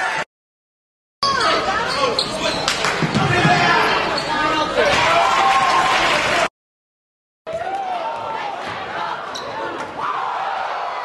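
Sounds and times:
crowd and players' voices: 0:01.2 - 0:06.5, 0:07.5 - 0:11.0.

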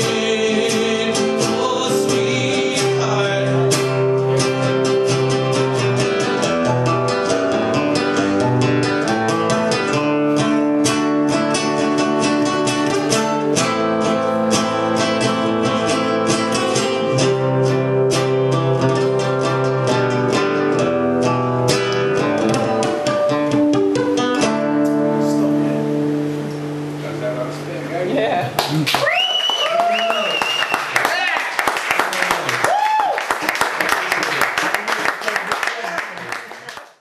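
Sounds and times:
fingerpicked acoustic guitar: 0:00.0 - 0:27.7.

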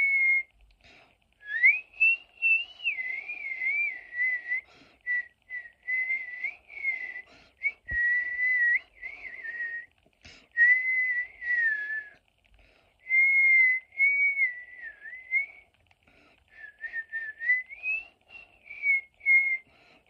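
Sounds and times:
person whistling a tune: 0:00.0 - 0:00.5, 0:01.4 - 0:09.9, 0:10.6 - 0:12.2, 0:13.0 - 0:15.6, 0:16.5 - 0:19.7.

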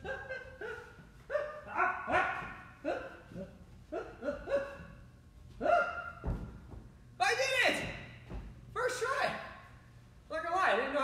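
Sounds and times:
man yelping and grunting: 0:00.0 - 0:04.9.

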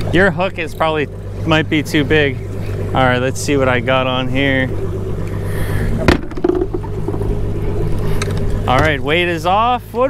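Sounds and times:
outboard motor idling: 0:00.0 - 0:10.0.

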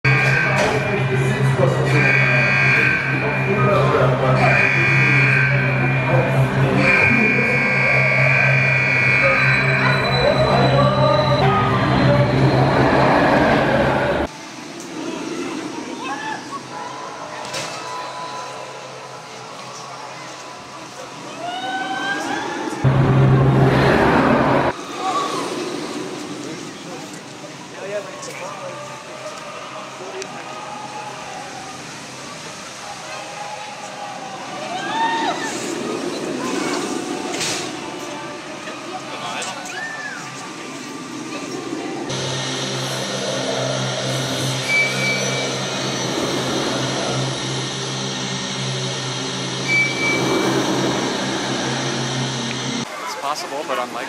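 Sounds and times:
roller coaster train rushing: 0:00.1 - 0:54.0
deep rumble: 0:22.8 - 0:26.8
riders screaming: 0:33.0 - 0:36.8.

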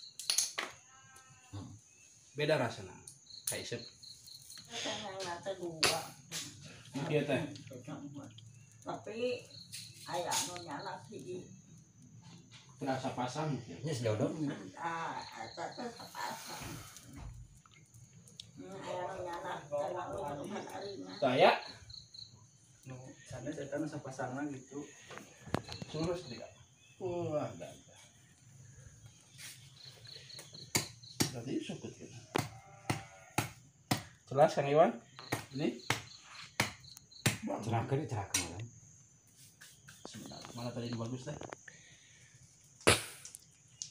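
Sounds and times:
crickets chirping: 0:00.0 - 0:43.9.

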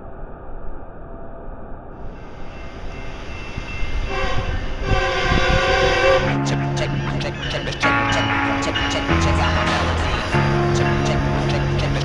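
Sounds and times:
horn-like chord: 0:04.1 - 0:12.0.

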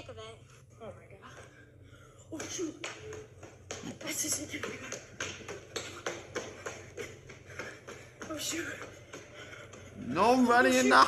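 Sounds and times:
quick footsteps on hard floor: 0:02.4 - 0:11.0.

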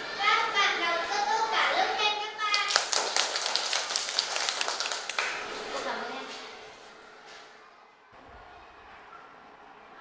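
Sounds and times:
children clapping: 0:02.5 - 0:05.5.

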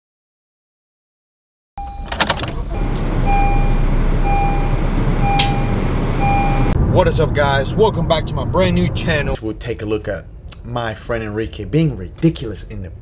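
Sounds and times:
dashboard warning chime beeping: 0:01.8 - 0:06.8
low engine hum: 0:01.8 - 0:09.4
clicks: 0:05.4 - 0:05.6.

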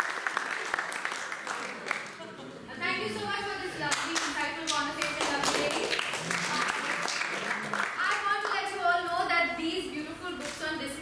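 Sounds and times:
audience clapping: 0:00.0 - 0:02.4, 0:03.9 - 0:08.7
woman speaking: 0:02.7 - 0:05.9, 0:08.0 - 0:11.0.

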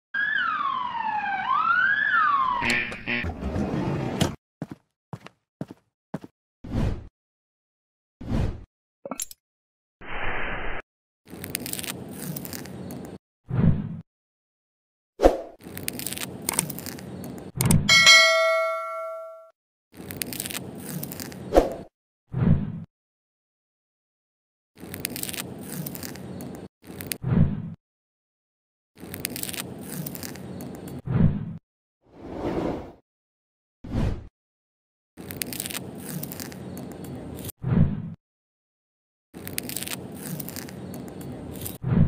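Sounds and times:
ambulance siren wailing: 0:00.1 - 0:03.0
crackly scrape: 0:11.3 - 0:13.2, 0:15.6 - 0:17.5, 0:24.8 - 0:27.2, 0:29.0 - 0:31.0, 0:35.2 - 0:37.5, 0:39.4 - 0:41.8
bright metallic ding: 0:17.9 - 0:19.4.

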